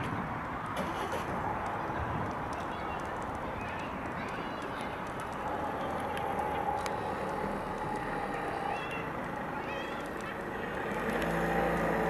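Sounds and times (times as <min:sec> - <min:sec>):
bonfire crackling and rushing: 0:00.0 - 0:12.0
vehicle engine hum: 0:00.6 - 0:12.0.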